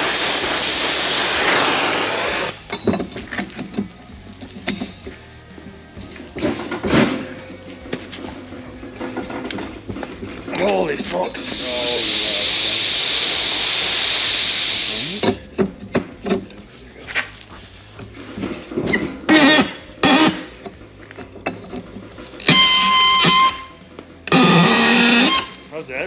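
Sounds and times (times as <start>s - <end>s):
gas torch flame hissing: 0.0s - 5.0s, 9.0s - 16.0s, 24.3s - 25.7s
seized threads squealing: 18.8s - 20.5s, 22.4s - 25.8s.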